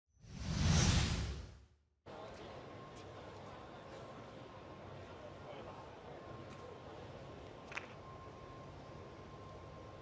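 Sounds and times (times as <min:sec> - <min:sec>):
whoosh sound effect: 0:00.2 - 0:01.6.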